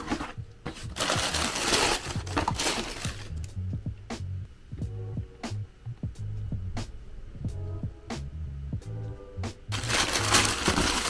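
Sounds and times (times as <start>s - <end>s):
tissue paper crinkling: 0.0s - 3.4s, 9.7s - 11.0s
background music with bass: 0.0s - 11.0s.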